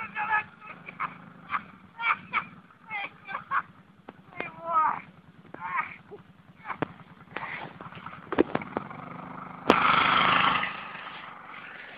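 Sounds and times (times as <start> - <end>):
atv engine idling: 0.0 - 11.9
atv engine revving: 0.0 - 11.9
engine clicks: 3.7 - 11.9.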